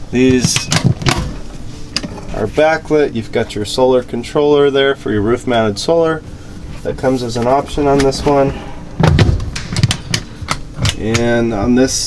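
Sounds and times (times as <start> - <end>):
cabinet doors thudding shut: 9.0 - 9.9.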